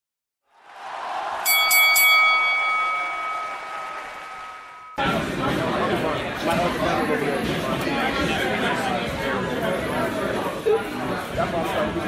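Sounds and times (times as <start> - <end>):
boxing ring bell ringing: 1.5 - 5.0.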